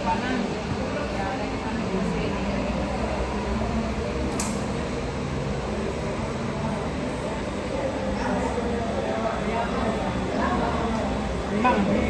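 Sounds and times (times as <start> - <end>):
sharp click: 4.3 - 4.7.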